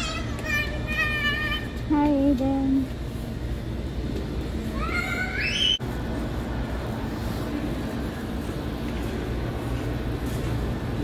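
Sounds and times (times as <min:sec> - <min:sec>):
low store hum: 0:00.0 - 0:11.0
child squealing: 0:04.7 - 0:05.8.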